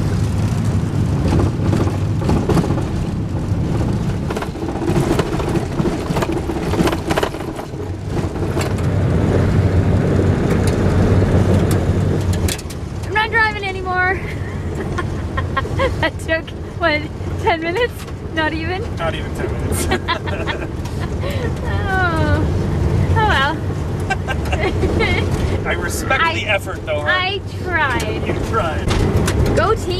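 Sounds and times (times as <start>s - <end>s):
tyres and engine rumbling: 0.0s - 29.9s
gravel striking underneath: 1.2s - 9.4s
person speaking: 23.1s - 28.9s.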